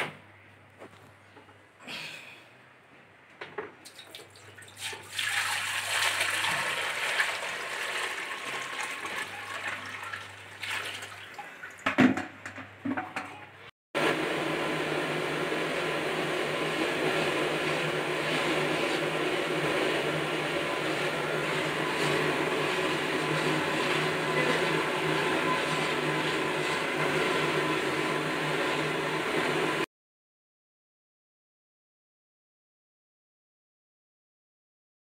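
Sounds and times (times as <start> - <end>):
milk boiling hard: 3.9 - 12.3, 14.0 - 29.9.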